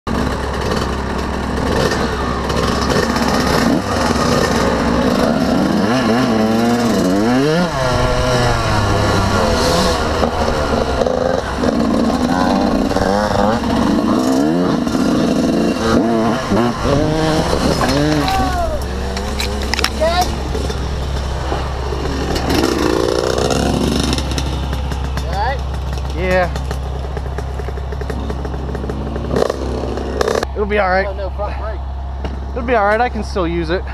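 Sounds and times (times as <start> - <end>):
dirt bike engine revving: 0.1 - 33.2
person shouting: 17.2 - 19.0.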